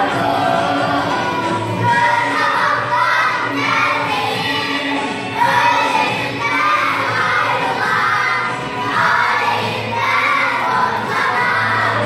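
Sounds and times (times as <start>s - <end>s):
background music: 0.0s - 12.0s
children singing loudly: 0.0s - 12.0s.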